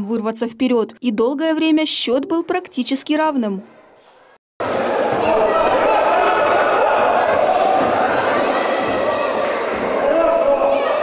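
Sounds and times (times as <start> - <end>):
echoing crowd and player voices: 3.7 - 11.0.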